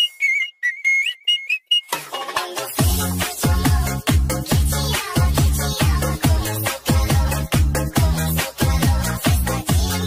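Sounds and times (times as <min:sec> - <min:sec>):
whistled melody: 0:00.0 - 0:02.6.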